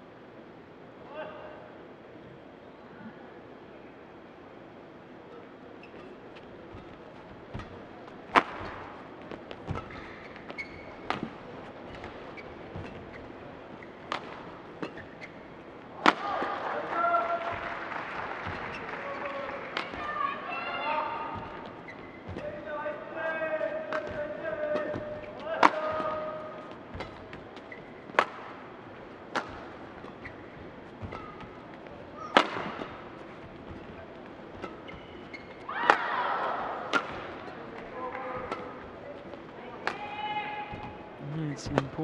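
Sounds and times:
voices in a hall: 0:00.0 - 0:42.0
rackets striking shuttlecock: 0:05.3 - 0:16.5, 0:18.4 - 0:20.1, 0:23.4 - 0:41.1.

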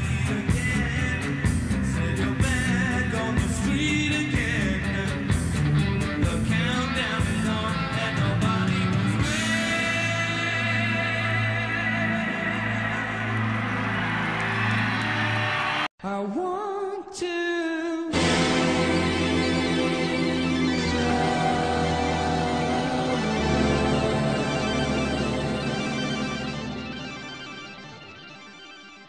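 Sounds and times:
rock band holding a chord: 0:00.0 - 0:15.9, 0:18.2 - 0:28.8.

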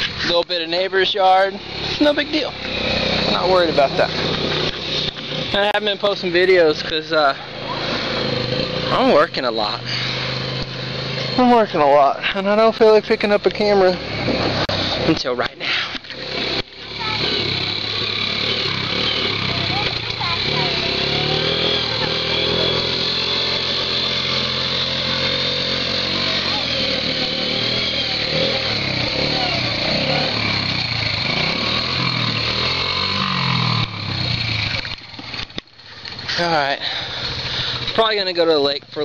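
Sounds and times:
small quad bike engine running: 0:00.0 - 0:39.0.

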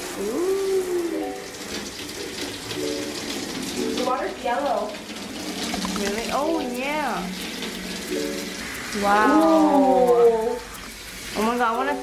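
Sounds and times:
shower water splashing into bathtub: 0:00.0 - 0:12.0.

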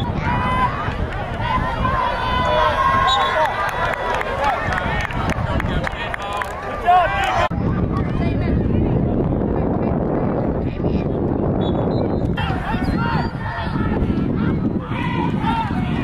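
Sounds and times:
people shouting and calling: 0:00.0 - 0:05.0, 0:06.0 - 0:08.4, 0:12.3 - 0:16.0.

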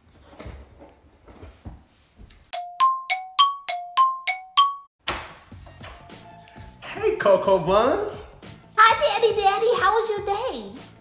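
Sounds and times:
door chime ringing: 0:02.6 - 0:04.9.

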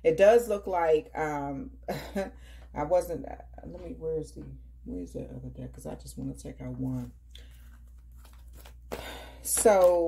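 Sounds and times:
cards rustling and clicking: 0:07.4 - 0:10.0.

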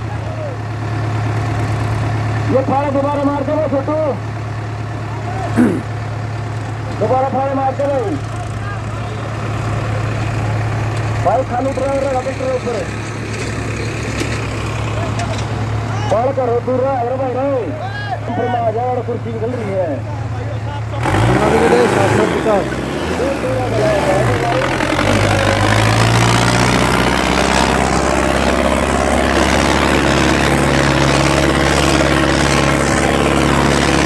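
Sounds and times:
tractor diesel engine droning: 0:00.0 - 0:34.0
crowd voices: 0:14.8 - 0:30.3.

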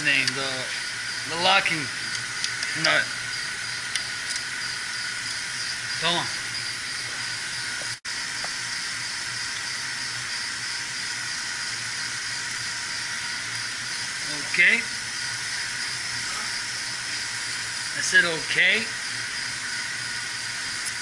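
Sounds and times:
machinery hiss and hum: 0:00.0 - 0:21.0.

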